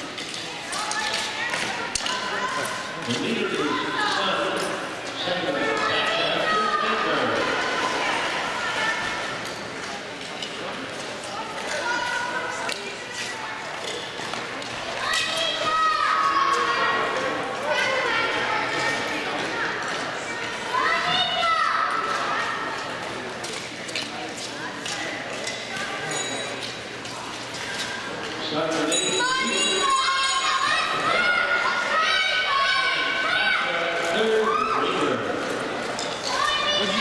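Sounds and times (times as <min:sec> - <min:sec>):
spectators calling out and shouting: 0:00.0 - 0:37.0.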